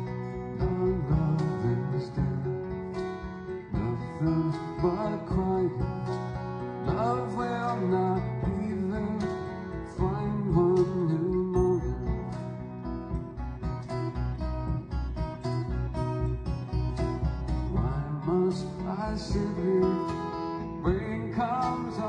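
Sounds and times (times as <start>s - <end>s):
live folk band playing: 0.0s - 22.0s
plucked acoustic guitar: 0.0s - 22.0s.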